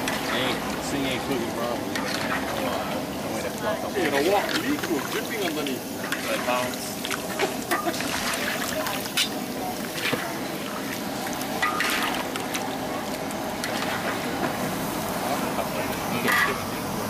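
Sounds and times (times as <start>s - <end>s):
chicken sizzling in a wok: 0.0s - 17.0s.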